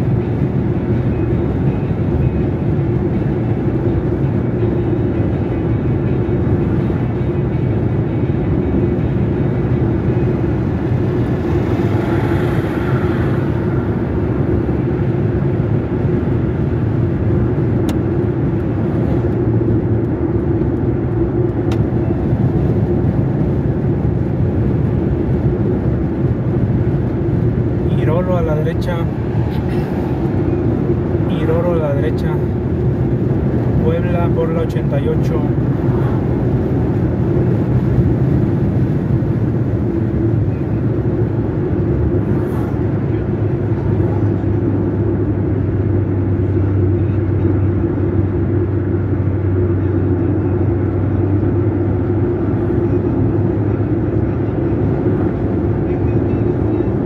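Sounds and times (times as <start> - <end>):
car road and engine noise: 0.0 - 57.0.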